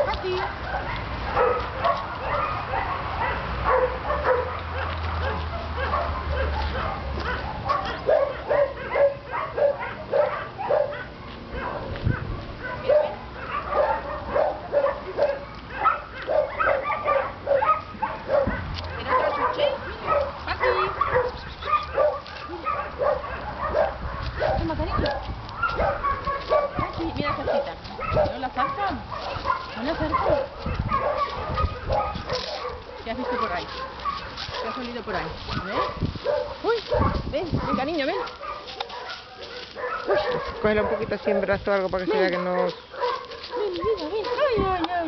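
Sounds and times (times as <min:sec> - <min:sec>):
dogs barking and yipping: 0:00.0 - 0:45.0.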